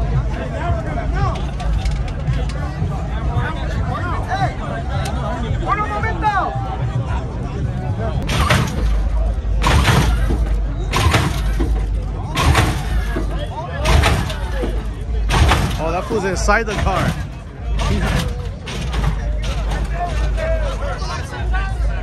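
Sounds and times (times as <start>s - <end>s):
hydraulics low rumble: 7.1s - 22.0s
car slamming down and clattering: 8.2s - 20.9s.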